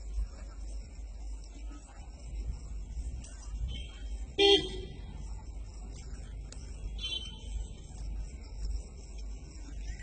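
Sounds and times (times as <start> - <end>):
vehicle horn toot: 3.7 - 5.0, 7.0 - 7.5.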